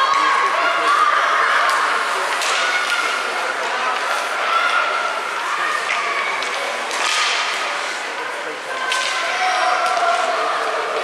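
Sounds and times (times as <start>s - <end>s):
hockey stick hitting puck: 1.7s - 3.2s, 5.9s - 8.0s, 8.8s - 10.3s
skates scraping ice: 1.7s - 11.0s.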